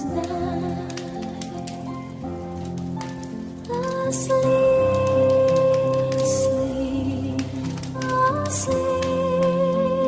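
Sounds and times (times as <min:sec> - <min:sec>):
soft music with sustained notes: 0:00.0 - 0:10.0
wood fire crackling and popping: 0:00.0 - 0:10.0.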